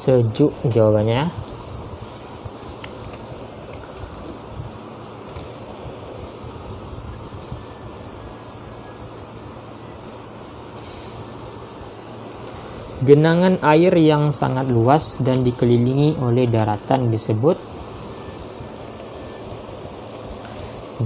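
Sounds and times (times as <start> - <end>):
low rumble and hiss: 0.0 - 21.0
short hiss: 10.7 - 11.4.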